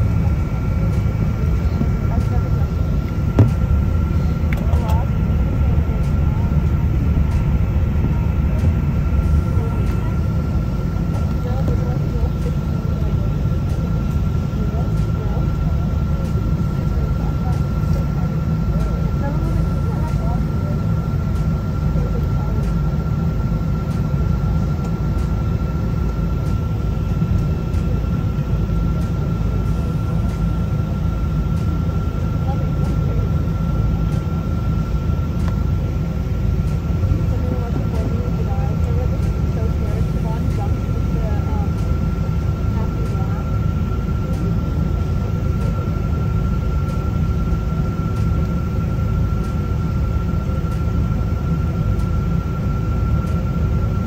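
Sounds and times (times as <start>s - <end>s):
jet engines rumbling: 0.0s - 54.0s
thin constant whine: 0.0s - 54.0s.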